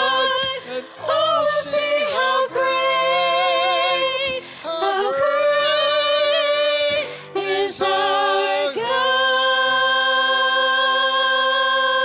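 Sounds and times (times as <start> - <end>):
women singing a worship song: 0.0 - 12.0.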